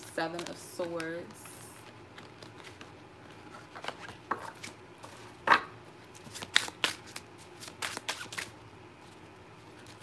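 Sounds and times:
cards being shuffled: 0.3 - 10.0.

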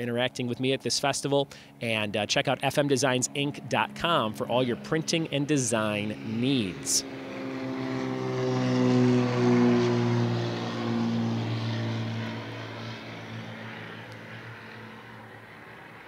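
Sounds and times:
propeller airplane engine drone: 0.0 - 16.0.

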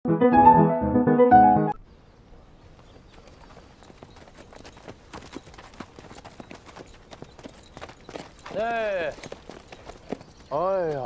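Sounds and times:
horse hooves clopping: 2.6 - 11.0.

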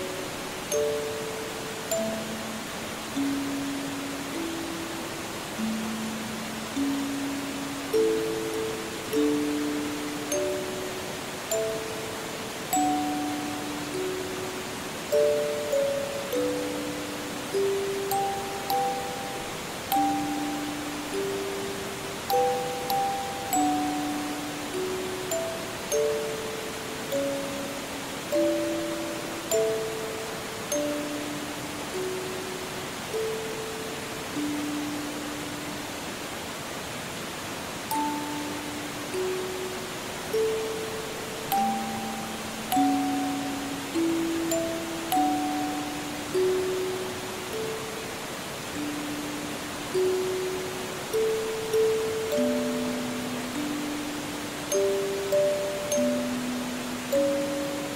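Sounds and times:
music box melody: 0.0 - 36.3, 37.7 - 57.9
forest stream rushing: 0.0 - 57.9.

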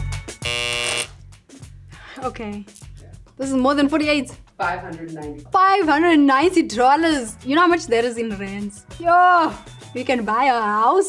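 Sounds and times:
background music with a beat: 0.0 - 10.5
harsh electronic buzzer: 0.4 - 1.2.

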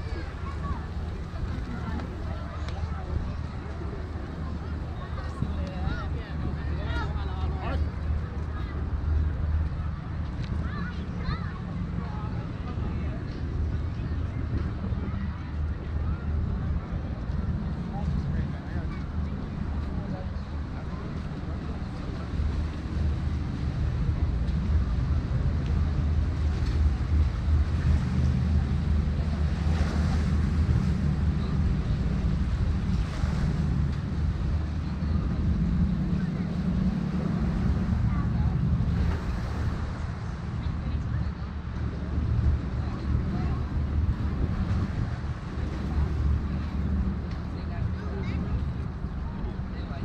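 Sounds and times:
voices of people nearby: 0.0 - 50.0
wind buffeting microphone: 0.0 - 50.0.

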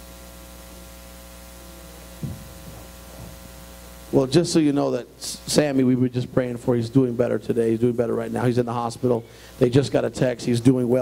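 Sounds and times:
electrical hum: 0.0 - 11.0
low thump: 2.2 - 3.4.

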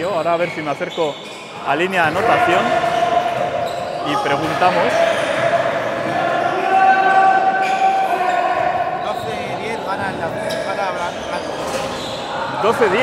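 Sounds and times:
voices of players and spectators: 0.0 - 13.0.

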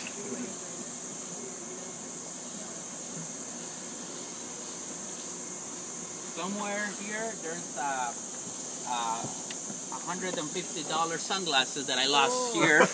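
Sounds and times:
background hiss: 0.0 - 12.9
insects droning: 0.0 - 12.9.

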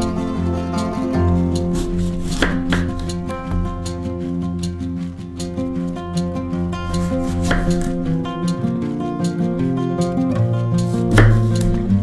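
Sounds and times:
background music sustained tones: 0.0 - 12.0
knife slicing apple: 1.7 - 3.3, 6.9 - 8.1, 10.8 - 11.8.

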